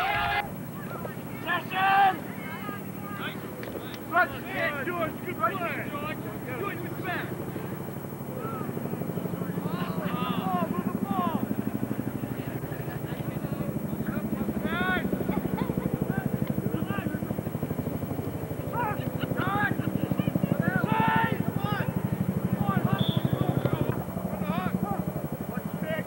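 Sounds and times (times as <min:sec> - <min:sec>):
players and spectators shouting: 0:00.0 - 0:07.7, 0:08.3 - 0:18.0, 0:18.6 - 0:25.7.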